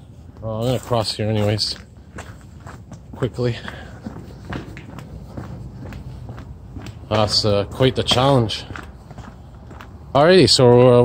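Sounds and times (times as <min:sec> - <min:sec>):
footsteps on asphalt: 0:00.1 - 0:11.0.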